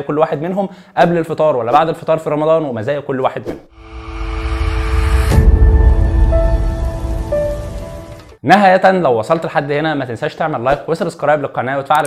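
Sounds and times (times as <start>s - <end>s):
rising whoosh: 3.7s - 8.4s
sharp deep hit: 3.7s - 8.4s
heavy low rumble: 3.8s - 8.4s.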